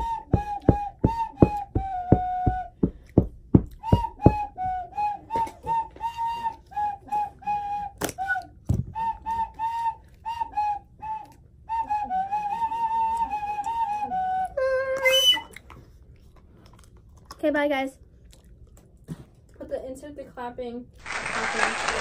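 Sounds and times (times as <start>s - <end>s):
plastic toy whistle tooting: 14.7s - 15.6s.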